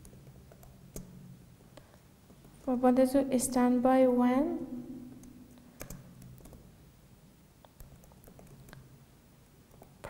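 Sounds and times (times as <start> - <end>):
typing on laptop keyboard: 0.0 - 1.2, 5.7 - 6.7, 7.7 - 8.9.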